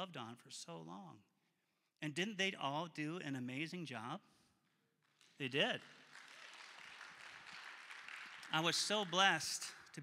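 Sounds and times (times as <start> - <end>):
congregation applause: 5.1 - 10.0.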